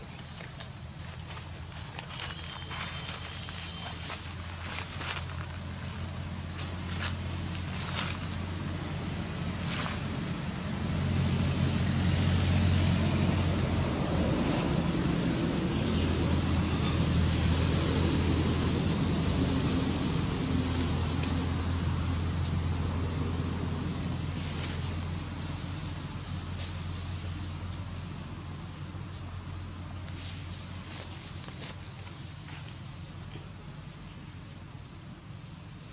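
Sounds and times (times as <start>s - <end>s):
vehicle engine humming: 0.0s - 35.9s.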